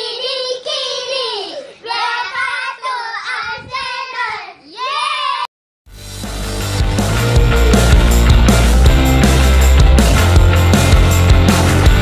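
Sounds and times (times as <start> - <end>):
loud music: 5.9 - 12.0.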